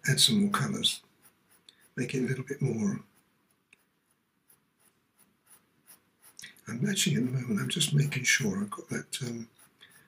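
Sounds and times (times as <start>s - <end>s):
pencil scratching on paper: 0.3s - 10.0s
man's voice: 6.6s - 9.5s.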